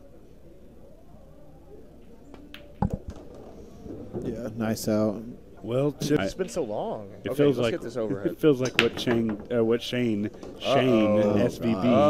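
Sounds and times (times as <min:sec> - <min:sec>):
pool balls clicking: 0:02.0 - 0:04.3, 0:08.6 - 0:11.3
ball knocking on ball: 0:02.5 - 0:04.3, 0:08.6 - 0:09.6.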